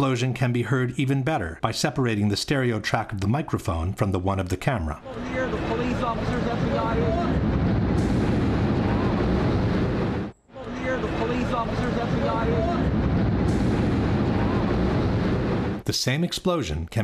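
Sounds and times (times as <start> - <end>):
man speaking: 0.0 - 7.4, 10.5 - 12.9, 15.8 - 17.0
deep continuous rumble: 5.2 - 15.8
wind buffeting microphone: 6.0 - 15.8.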